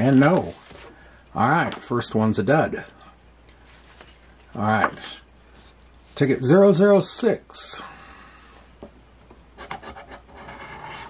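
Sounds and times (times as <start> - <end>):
coin scraping scratch ticket: 9.6 - 11.0.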